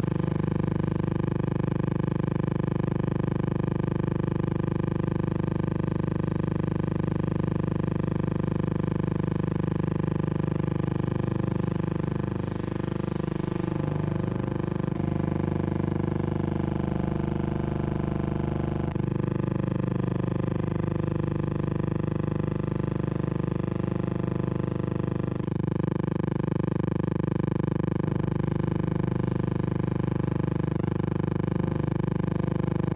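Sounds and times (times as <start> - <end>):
steady hum with overtones: 0.0 - 32.9.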